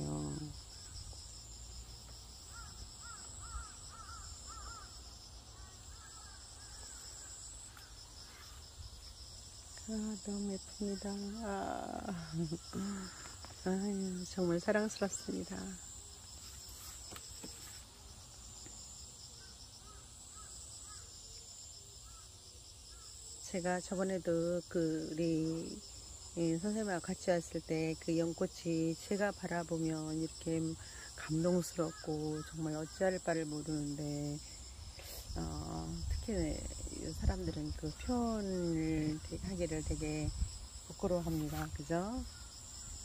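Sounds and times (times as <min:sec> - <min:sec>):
high-pitched insect drone: 0:00.0 - 0:14.1.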